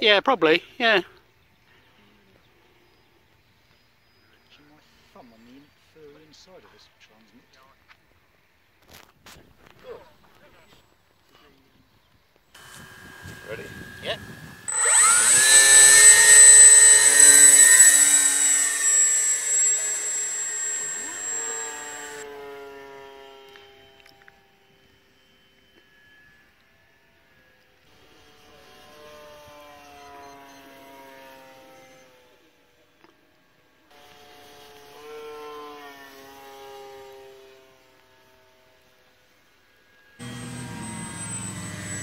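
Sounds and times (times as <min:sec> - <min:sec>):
model glider motor whine: 0:12.6 - 0:24.0, 0:40.2 - 0:42.0.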